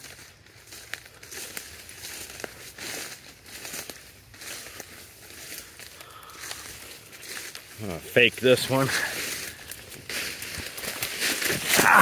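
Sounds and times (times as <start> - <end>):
brush and twigs rustling: 0.0 - 12.0.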